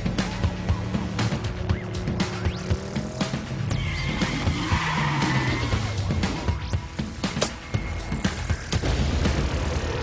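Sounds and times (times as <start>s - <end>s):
background music with steady beat: 0.0s - 10.0s
car tyres squealing: 3.6s - 6.1s.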